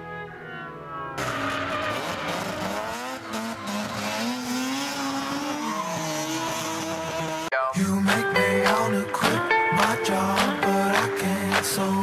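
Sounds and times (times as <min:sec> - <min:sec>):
car engine revving: 0:01.1 - 0:07.5
tyres squealing: 0:01.2 - 0:07.5.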